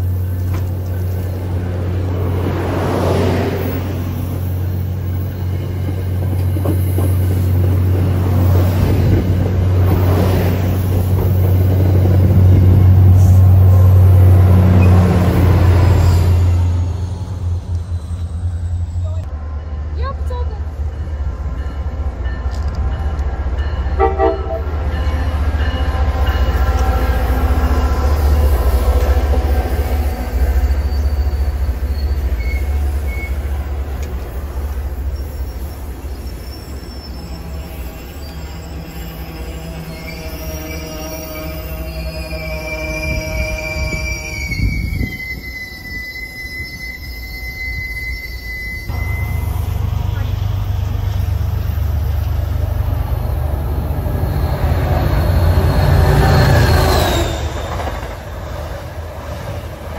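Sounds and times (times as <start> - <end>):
diesel locomotive drone: 0.0 - 59.9
second train engine drone: 0.0 - 59.9.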